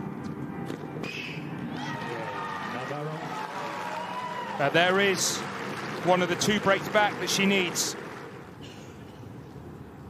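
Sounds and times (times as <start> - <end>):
stadium crowd ambience: 0.0 - 10.0
man commentating: 6.0 - 8.0.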